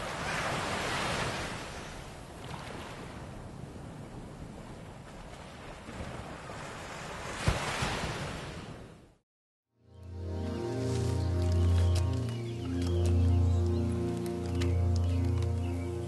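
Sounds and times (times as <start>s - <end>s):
ocean waves washing: 0.0s - 9.0s.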